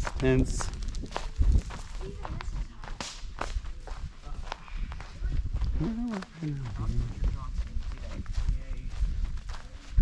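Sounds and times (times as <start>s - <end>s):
footsteps on pine needles and twigs: 0.0s - 10.0s.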